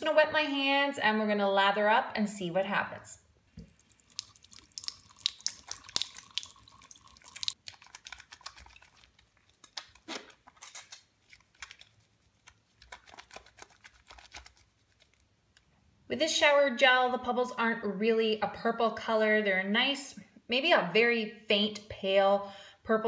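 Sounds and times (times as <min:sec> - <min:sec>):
running tap water: 0:03.6 - 0:07.6
hands squelching in lather: 0:03.6 - 0:10.3.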